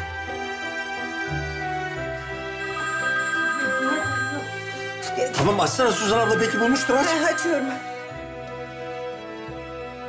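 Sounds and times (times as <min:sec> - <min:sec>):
background music: 0:00.0 - 0:10.0
phone ringing melodic ringtone: 0:02.5 - 0:08.4.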